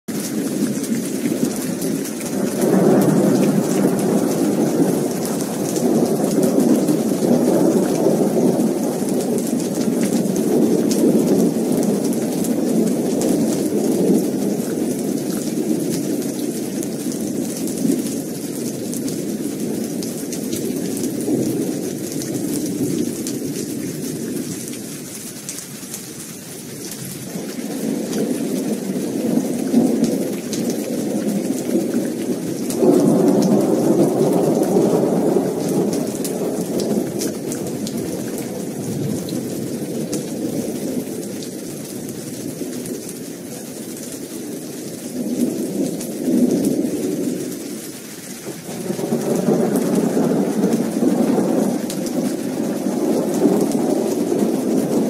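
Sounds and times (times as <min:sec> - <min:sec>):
rolling thunder: 0:00.1 - 0:24.5, 0:27.0 - 0:55.0
heavy rain hissing: 0:00.1 - 0:55.0.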